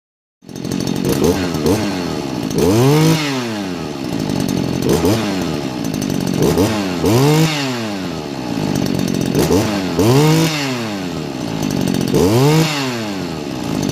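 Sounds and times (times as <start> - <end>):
two-stroke engine revving: 0.4 - 13.9.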